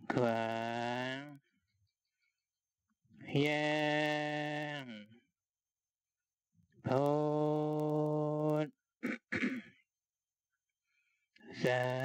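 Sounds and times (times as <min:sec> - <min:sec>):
person intoning drawn-out syllables: 0:11.6 - 0:12.0.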